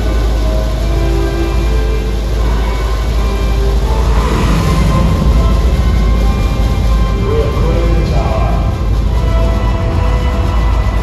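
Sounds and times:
deep rocket rumble: 0.0s - 11.0s
dramatic music: 0.0s - 11.0s.

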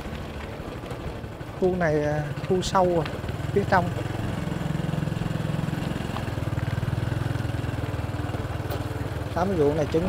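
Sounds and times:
small motorbike engine running: 0.0s - 10.0s.

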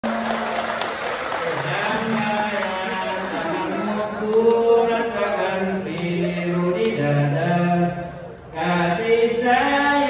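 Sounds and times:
man singing over a pa system: 1.5s - 10.0s.

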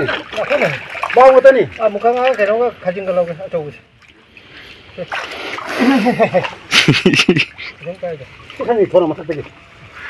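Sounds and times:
sharp splash: 0.0s - 2.6s, 4.0s - 9.5s
water splashing: 0.0s - 10.0s.

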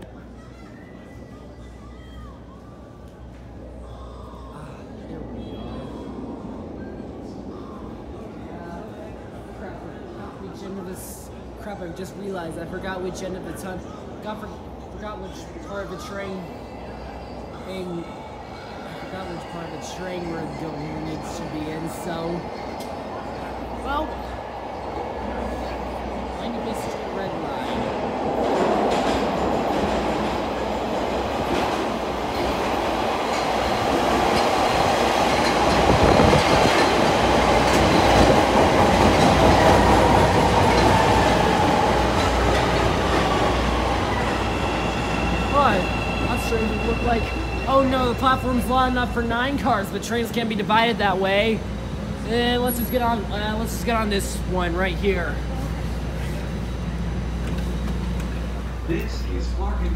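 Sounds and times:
train wheels rumbling on rail: 22.6s - 48.2s, 55.3s - 59.9s.

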